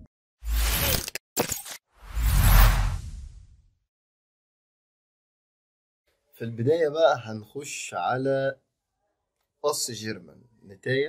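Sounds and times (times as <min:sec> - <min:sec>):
whoosh: 0:02.0 - 0:03.6.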